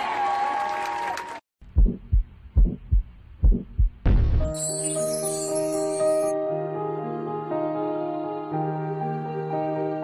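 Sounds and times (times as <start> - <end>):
heartbeat thumps: 1.6 - 4.4.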